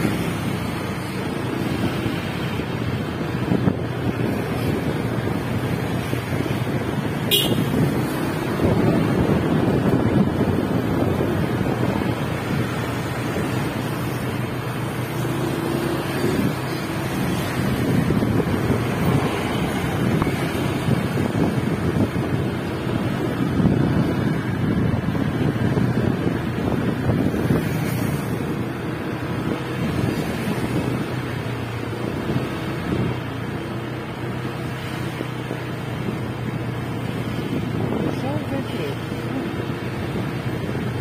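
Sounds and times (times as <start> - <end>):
wind buffeting microphone: 0.0 - 41.0.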